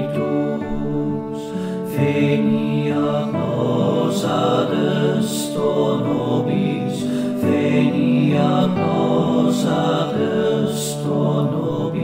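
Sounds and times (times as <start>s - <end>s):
slow chamber ensemble music: 0.0s - 12.0s.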